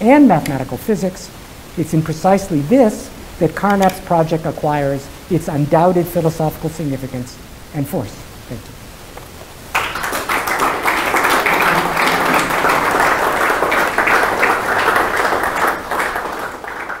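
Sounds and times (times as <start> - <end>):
audience applauding: 9.7 - 17.0.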